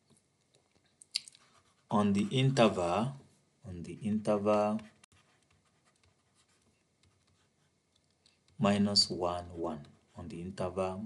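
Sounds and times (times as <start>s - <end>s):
stylus scratching on pen tablet: 1.4s - 2.8s, 4.6s - 7.8s.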